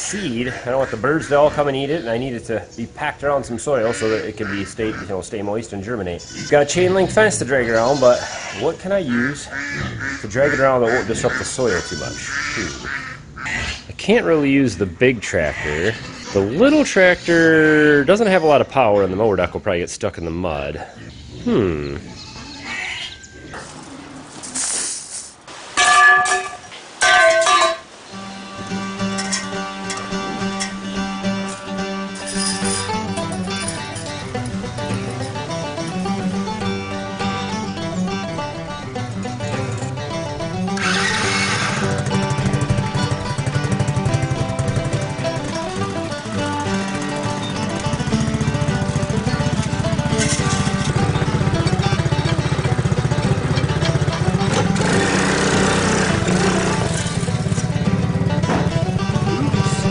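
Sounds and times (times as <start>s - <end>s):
background music: 25.8s - 59.9s
small four-wheeler engine running: 40.8s - 59.9s.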